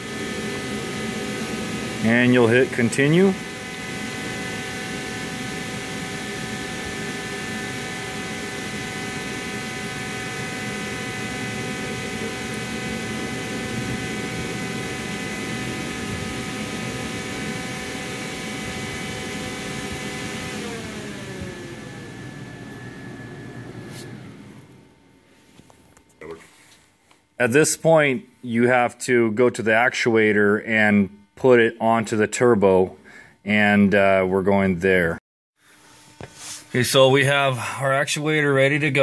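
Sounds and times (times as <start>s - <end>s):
motor whine with rushing air: 0.0s - 25.7s, 34.9s - 39.0s.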